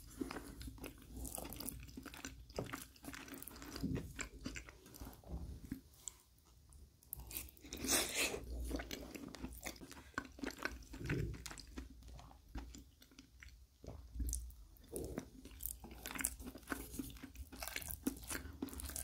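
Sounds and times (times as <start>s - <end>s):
man chewing food: 0.0s - 6.4s, 7.0s - 19.0s.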